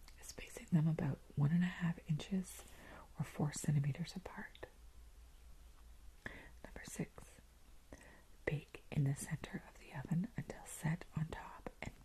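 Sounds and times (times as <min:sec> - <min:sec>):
woman whispering: 0:00.1 - 0:04.8, 0:06.3 - 0:12.0.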